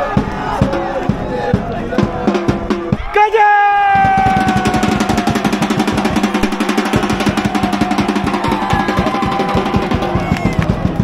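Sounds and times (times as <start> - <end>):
drum fast roll: 0.0 - 3.1, 3.9 - 11.0.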